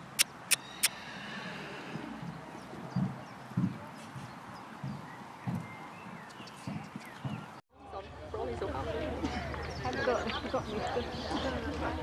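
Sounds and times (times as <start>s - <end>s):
horse hoofbeats on soft ground: 2.0s - 7.6s.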